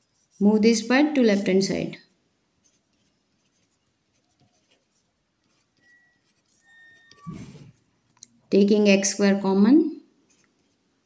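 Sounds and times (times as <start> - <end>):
pen scratching on paper: 0.0 - 0.5, 2.6 - 7.8, 10.3 - 10.8.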